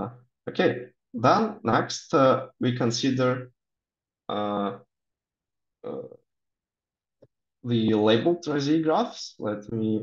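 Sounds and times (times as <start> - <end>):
man saying uh: 4.3 - 4.8.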